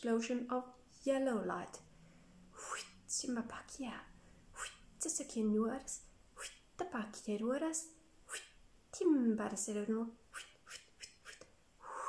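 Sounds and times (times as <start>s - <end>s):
woman speaking flowing syllables: 2.6s - 10.2s.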